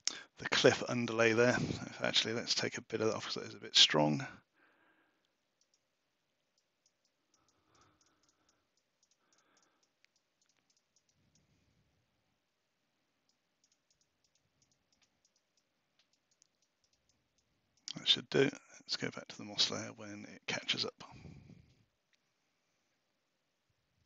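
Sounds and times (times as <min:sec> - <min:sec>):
mouse and keyboard clicks: 0:05.6 - 0:05.9, 0:06.5 - 0:11.5, 0:13.3 - 0:18.0.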